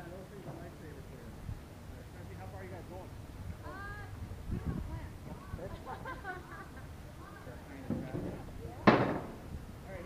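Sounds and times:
sharp knock: 0:08.8 - 0:09.4.

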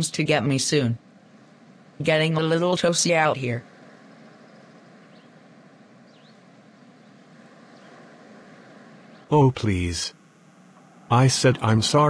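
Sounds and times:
soft steady hiss: 0:00.0 - 0:12.0
high bird chirps: 0:04.0 - 0:08.0.

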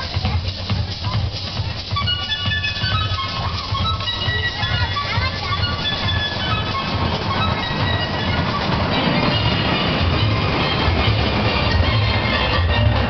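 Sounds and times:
show music over loudspeakers: 0:00.0 - 0:13.0.

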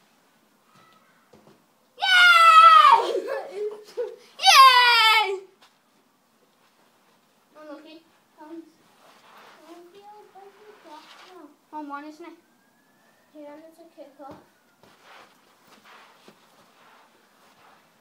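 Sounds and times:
child yelling: 0:02.0 - 0:03.4, 0:04.4 - 0:05.5
quiet child voices: 0:09.6 - 0:11.6.

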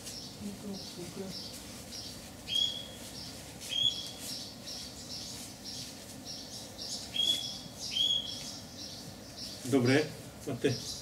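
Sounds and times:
small birds chirping: 0:00.0 - 0:11.0
clear high bird call: 0:02.5 - 0:03.0, 0:07.1 - 0:08.6.

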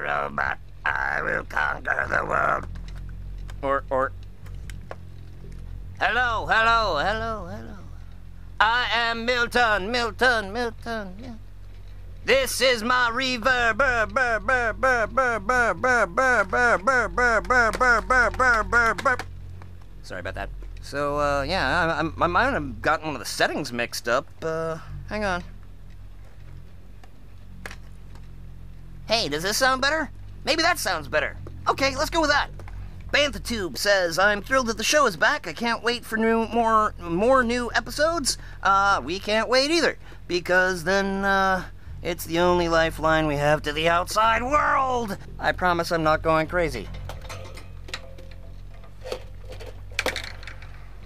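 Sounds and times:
low steady hum: 0:00.0 - 0:51.0.

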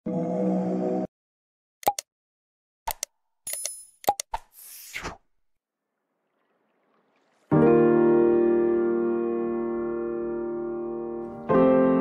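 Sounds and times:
mouse-click pops: 0:01.8 - 0:02.0.

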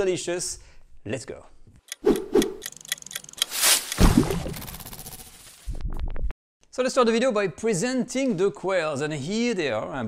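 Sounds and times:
sharp clicks: 0:01.8 - 0:05.1
fast ticking: 0:01.9 - 0:03.5.

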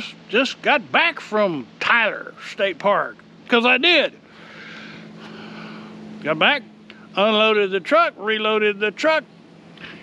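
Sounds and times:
distant engine humming: 0:00.0 - 0:10.0.

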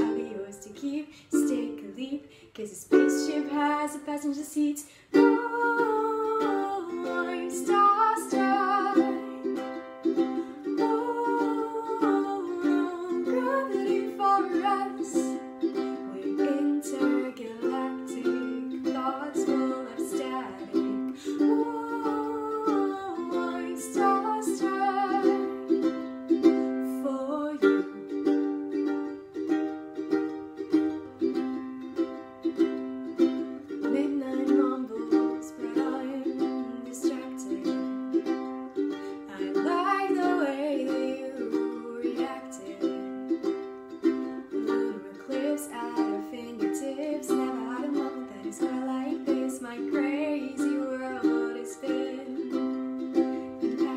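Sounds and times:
woman singing: 0:00.0 - 0:29.1, 0:32.5 - 0:53.9
ukulele strumming chords: 0:00.0 - 0:53.9.

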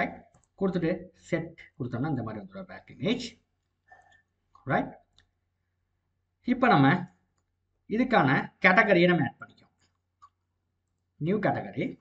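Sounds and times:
computer mouse clicks: 0:00.2 - 0:00.6, 0:03.9 - 0:05.4, 0:07.0 - 0:07.6.

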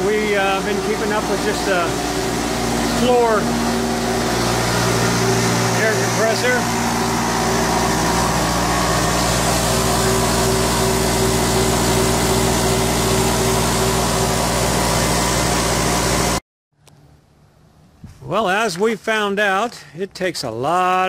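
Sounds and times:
air compressor running: 0:00.0 - 0:16.4.

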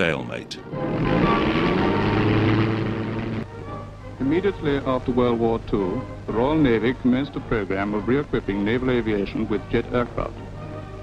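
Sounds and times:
propeller aircraft engine running: 0:00.7 - 0:04.0.

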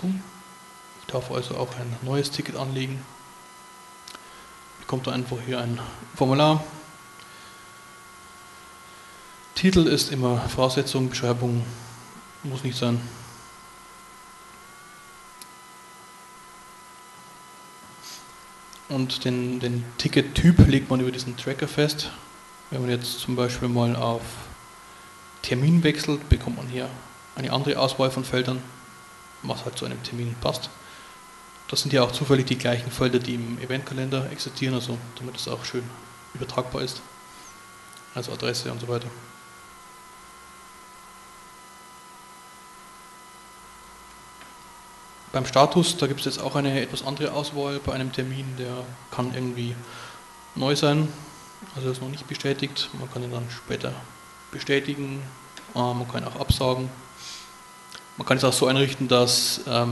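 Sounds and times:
thin electrical whine: 0:00.0 - 0:59.9
light hiss: 0:17.8 - 0:19.0, 0:54.5 - 0:58.4
faint hiss: 0:17.8 - 0:28.7, 0:44.1 - 0:59.9.

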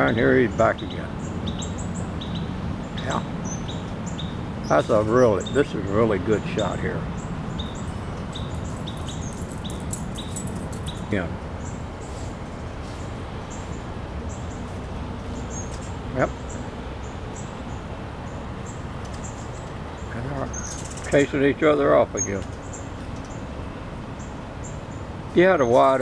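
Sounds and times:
low outdoor rumble: 0:00.0 - 0:26.0
small bird chirping: 0:00.6 - 0:05.7, 0:06.6 - 0:12.3, 0:12.9 - 0:21.3, 0:22.0 - 0:23.5.

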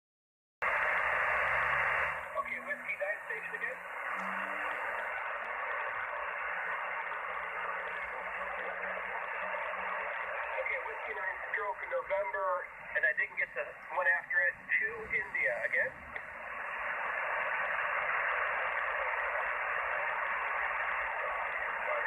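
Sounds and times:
shortwave radio band noise hiss: 0:00.6 - 0:22.0
garbled radio voices: 0:02.3 - 0:16.3
person speaking over radio: 0:02.4 - 0:03.8, 0:10.4 - 0:16.0.

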